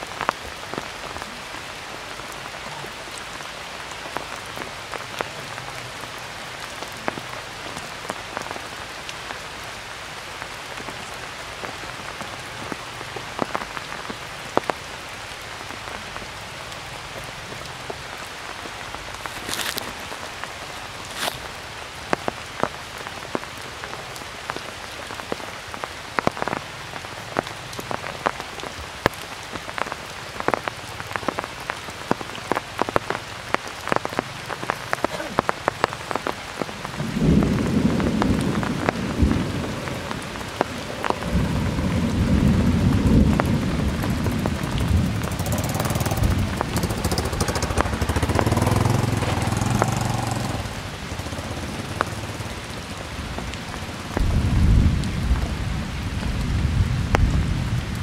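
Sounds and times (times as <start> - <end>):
raindrop ticks: 0.0 - 1.4, 2.2 - 55.5
rain on foliage: 0.0 - 58.0.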